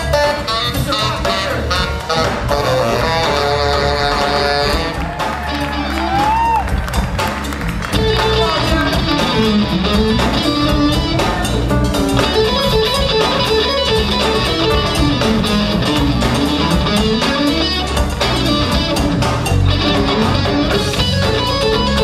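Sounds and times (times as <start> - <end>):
tenor saxophone: 0.0 - 6.2
funk band playing: 0.0 - 22.0
electric guitar riff: 7.7 - 22.0.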